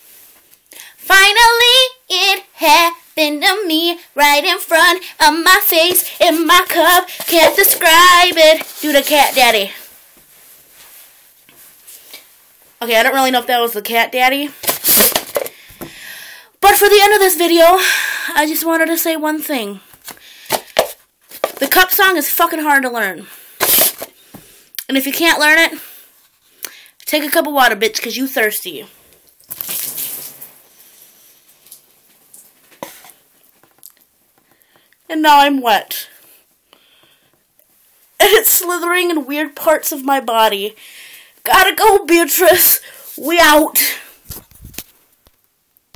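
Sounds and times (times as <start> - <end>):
water splashing onto cloth: 29.4 - 30.6.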